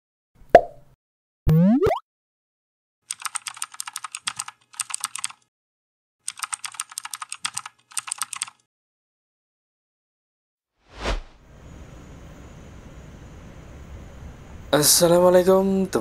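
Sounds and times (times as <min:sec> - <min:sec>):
keyboard typing clicks: 0:03.1 - 0:05.4, 0:06.3 - 0:08.6.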